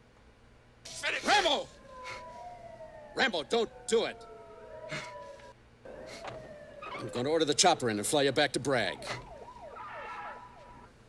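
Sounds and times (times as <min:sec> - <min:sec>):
faint emergency vehicle siren: 0:00.9 - 0:11.0.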